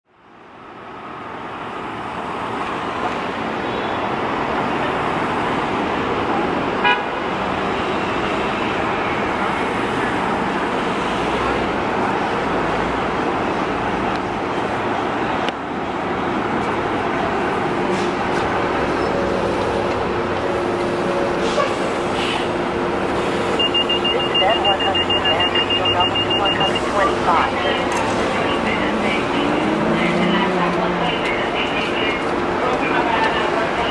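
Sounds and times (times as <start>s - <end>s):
city street traffic: 0.0s - 33.9s
bus engine running: 4.4s - 33.9s
bus horn toot: 6.8s - 7.2s, 21.4s - 21.9s
rapid high beeping: 23.6s - 27.8s.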